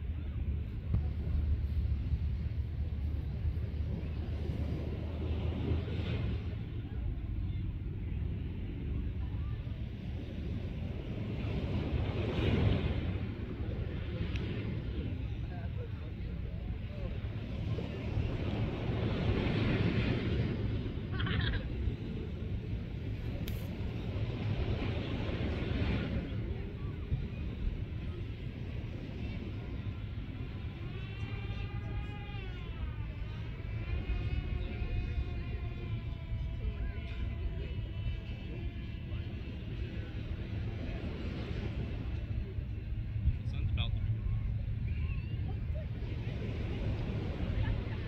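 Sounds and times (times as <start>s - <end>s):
small waves washing onto sand: 0.0s - 44.8s, 45.4s - 48.0s
wind rumble on microphone: 0.0s - 48.0s.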